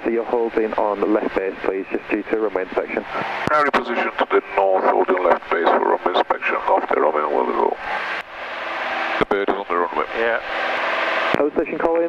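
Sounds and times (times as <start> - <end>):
radio hiss: 0.0 - 12.0
radio speech through headset: 0.8 - 7.8.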